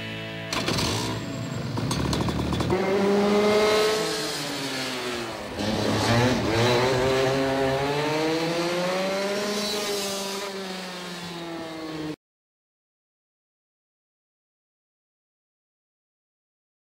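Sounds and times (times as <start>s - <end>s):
go-kart engine revving: 0.4s - 12.2s.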